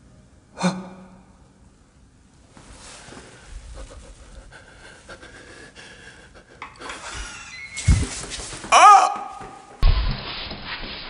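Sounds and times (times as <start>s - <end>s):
person breathing: 2.7s - 7.5s.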